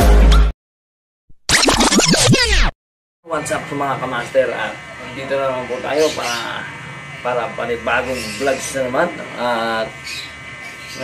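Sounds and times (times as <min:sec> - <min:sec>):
glitchy falling swoops: 0:01.5 - 0:02.7.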